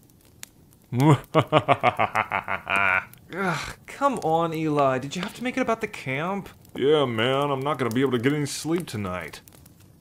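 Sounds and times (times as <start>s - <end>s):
man laughing: 1.0s - 3.8s.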